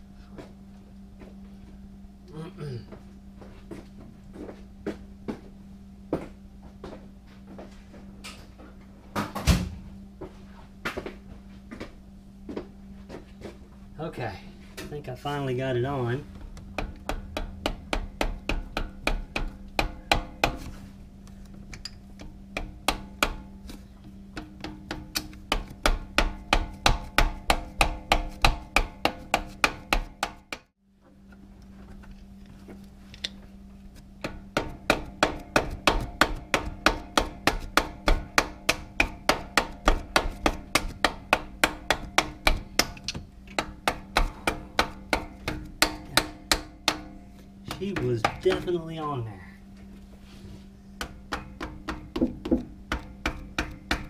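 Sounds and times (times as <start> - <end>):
hammer tapping on metal: 16.6 - 20.8, 21.8 - 23.6, 24.3 - 30.7, 34.2 - 48.8, 51.0 - 54.0.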